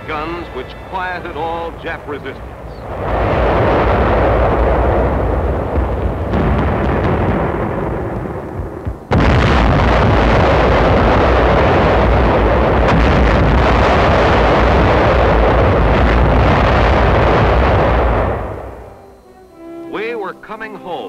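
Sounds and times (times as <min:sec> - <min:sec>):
artillery fire and shell bursts: 0:00.0 - 0:19.2.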